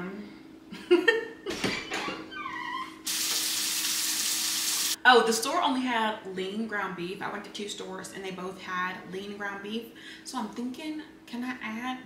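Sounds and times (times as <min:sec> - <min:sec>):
water running into sink: 0:03.1 - 0:05.0.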